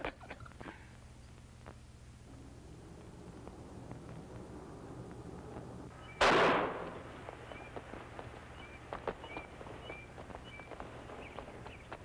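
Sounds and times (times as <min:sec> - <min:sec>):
starter pistol shot: 0:06.2 - 0:07.1.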